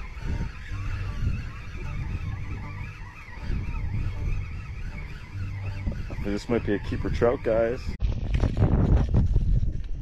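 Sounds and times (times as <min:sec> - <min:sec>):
fishing reel gears whining: 0:00.0 - 0:07.9
wind rumble on microphone: 0:00.0 - 0:10.0.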